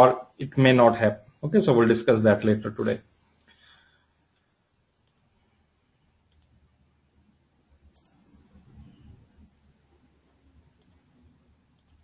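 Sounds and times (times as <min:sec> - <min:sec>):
faint clicks: 0:05.0 - 0:05.4, 0:06.2 - 0:06.7, 0:07.8 - 0:08.8, 0:10.7 - 0:12.0.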